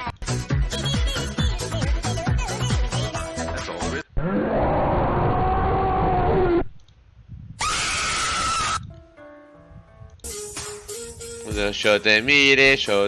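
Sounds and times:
harsh scream-roar: 0:04.2 - 0:06.6, 0:07.6 - 0:08.8.

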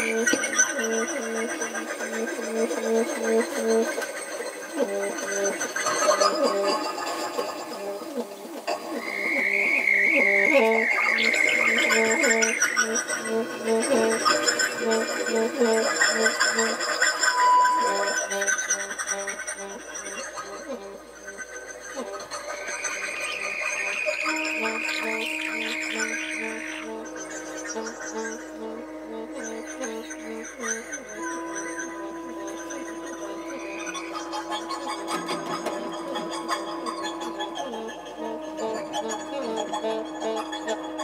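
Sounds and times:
high held wavering tone: 0:00.0 - 0:41.0
low steady drone: 0:00.0 - 0:41.0
low pulsing note: 0:23.3 - 0:41.0.

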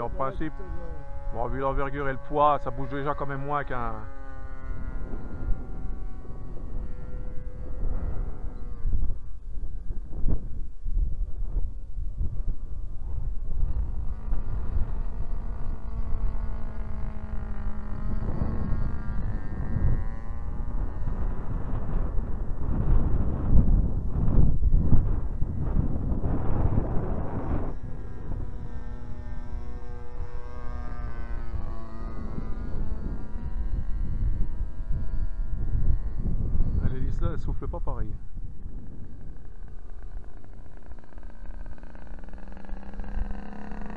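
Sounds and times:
model plane engine droning: 0:00.0 - 0:43.9
wind rumbling on microphone: 0:00.0 - 0:43.9.

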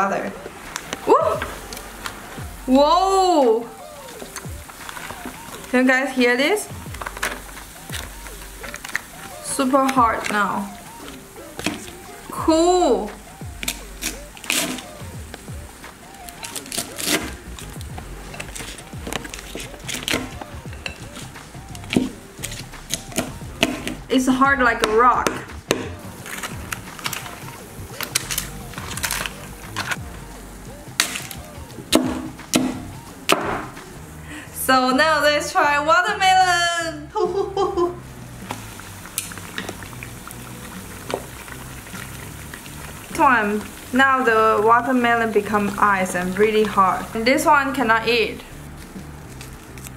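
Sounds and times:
dry ice bubbling and fizzing: 0:00.0 - 0:36.7, 0:37.3 - 0:49.9
background music: 0:00.0 - 0:49.9
sharp crackles: 0:00.4 - 0:34.0, 0:38.0 - 0:49.9
frozen cabbage leaf cracking: 0:16.2 - 0:17.8, 0:48.8 - 0:49.9.

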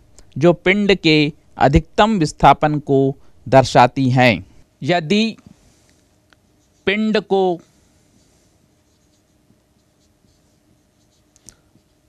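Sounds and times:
marker scratching on whiteboard: 0:08.2 - 0:12.0.

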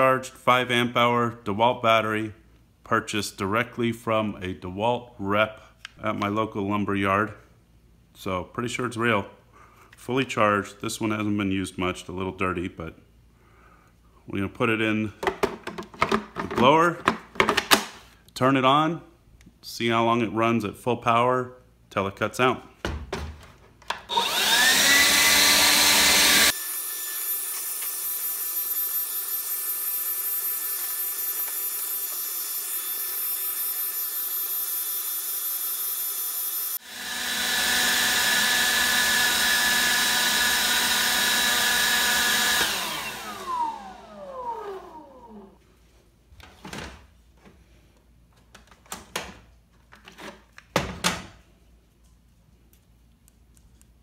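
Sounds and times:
cordless blower whining: 0:24.0 - 0:45.6.

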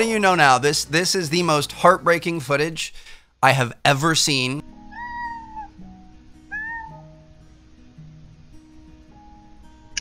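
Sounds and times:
soft background music: 0:00.0 - 0:02.6, 0:03.9 - 0:10.0
cat meowing: 0:04.9 - 0:05.8, 0:06.5 - 0:07.2.

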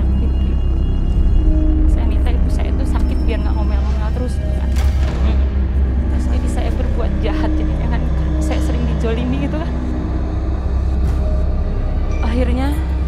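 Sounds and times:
deep low music drone: 0:00.0 - 0:13.0.

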